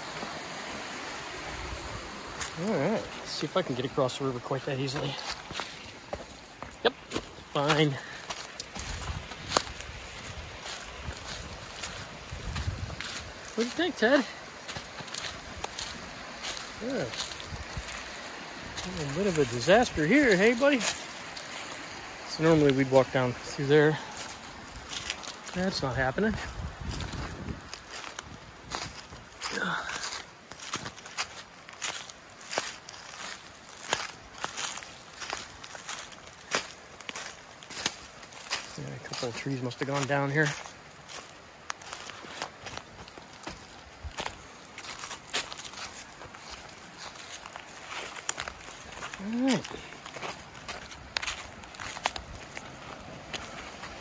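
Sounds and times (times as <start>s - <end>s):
footsteps on dry leaves and snow: 0.0s - 54.0s.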